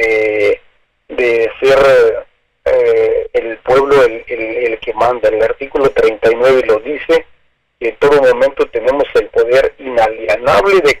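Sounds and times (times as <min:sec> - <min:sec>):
person speaking: 0:00.0 - 0:11.0.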